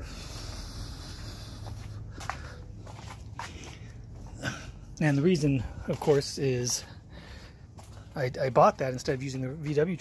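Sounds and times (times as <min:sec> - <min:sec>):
steady low hum: 0:00.0 - 0:10.0
footsteps on concrete: 0:00.3 - 0:09.5.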